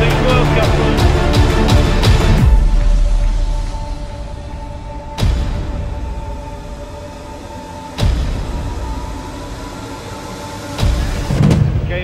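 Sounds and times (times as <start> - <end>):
sustained tones music: 0.0 - 11.9.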